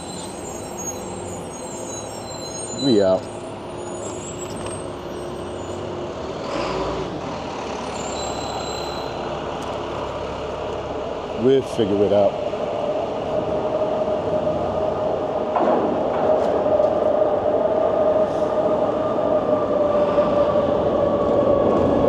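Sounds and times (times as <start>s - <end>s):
street traffic engines: 0.0s - 22.0s.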